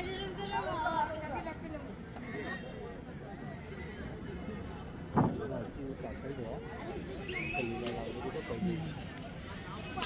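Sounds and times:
faint shouting voices: 0:00.0 - 0:10.0.

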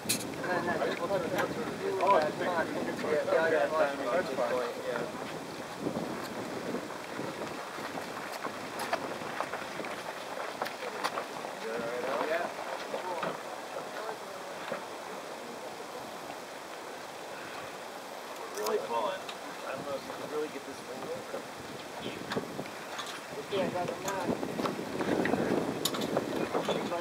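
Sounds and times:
wind on microphone: 0:00.0 - 0:18.3, 0:19.4 - 0:27.0.

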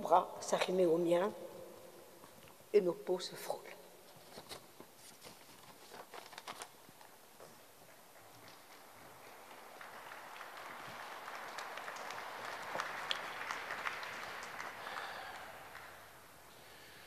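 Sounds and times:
audience applauding: 0:08.1 - 0:16.4.

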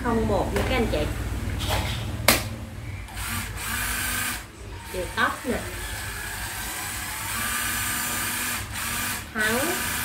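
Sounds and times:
cordless drill whirring: 0:03.1 - 0:10.0.

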